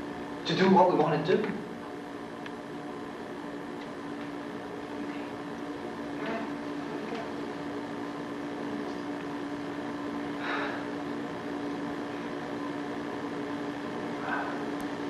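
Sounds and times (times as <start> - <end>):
steady held tone hum: 0.0 - 15.0.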